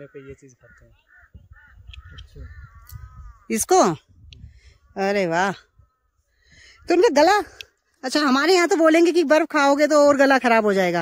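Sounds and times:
crow cawing: 0.0s - 7.7s.

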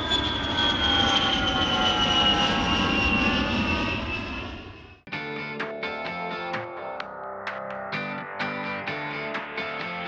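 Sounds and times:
airplane engine drone: 0.0s - 10.0s.

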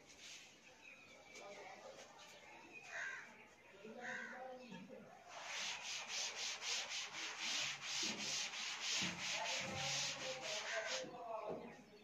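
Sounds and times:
chalk scratching on chalkboard: 5.3s - 11.1s.

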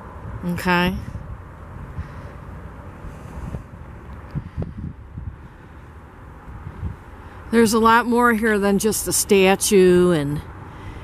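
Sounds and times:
wind rumbling on microphone: 0.0s - 8.2s.

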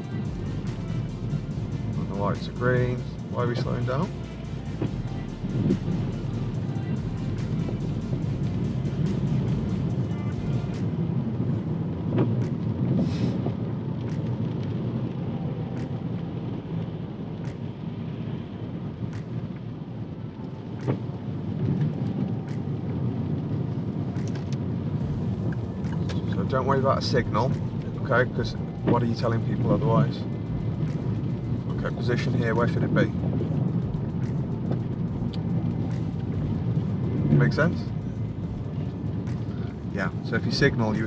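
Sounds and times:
tyres and engine rumble: 0.0s - 41.0s
sharp ticks: 32.6s - 37.2s.

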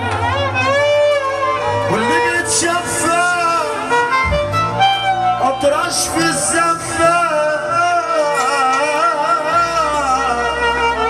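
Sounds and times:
amplified band accompaniment: 0.0s - 11.0s
man singing into a microphone: 1.7s - 4.0s, 5.4s - 11.0s.

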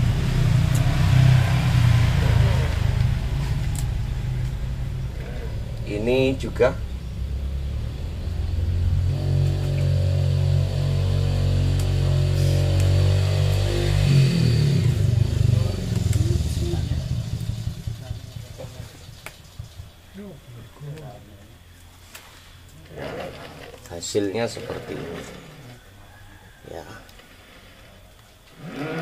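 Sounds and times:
vehicle engine running: 0.0s - 23.9s.

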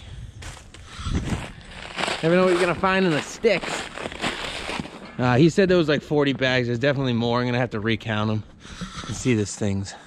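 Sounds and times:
footsteps in dry leaves: 0.4s - 5.1s.

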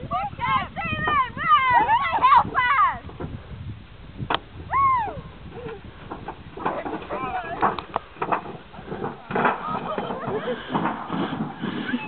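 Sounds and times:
people laughing: 9.6s - 12.0s.

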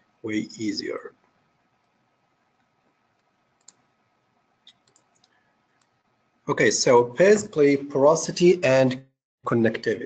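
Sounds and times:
computer mouse clicks: 1.2s - 3.9s, 4.6s - 6.0s.

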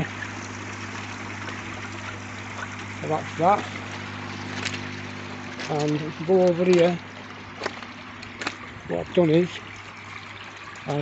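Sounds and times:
electric pump hum: 0.0s - 11.0s
water trickling into pond: 0.0s - 11.0s.

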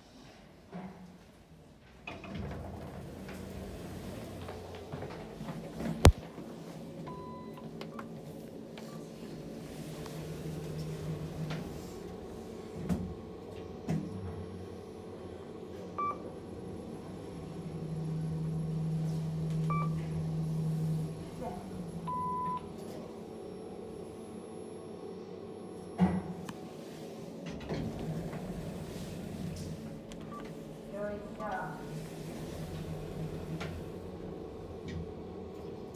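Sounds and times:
lift car humming: 2.1s - 35.9s.

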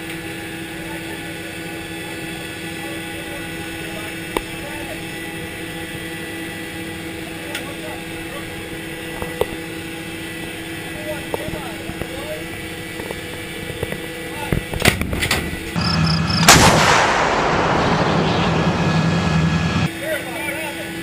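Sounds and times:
mechanical hum: 0.0s - 21.0s
artillery gun firing: 16.2s - 19.8s.

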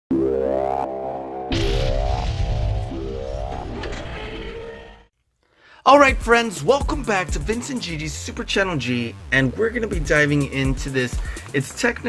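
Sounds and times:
electronic music: 6.0s - 12.0s.

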